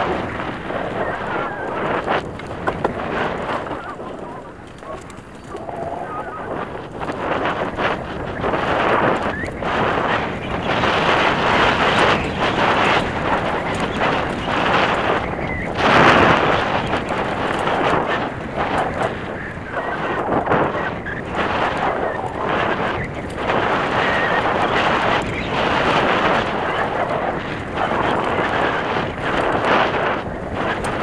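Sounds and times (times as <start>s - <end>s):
bike rattling over bumps: 0.0s - 31.0s
bike tyres on dirt and leaves: 0.0s - 31.0s.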